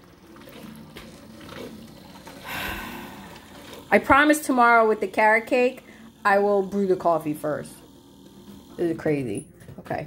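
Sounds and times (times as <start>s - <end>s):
coffee maker brewing: 0.0s - 10.0s.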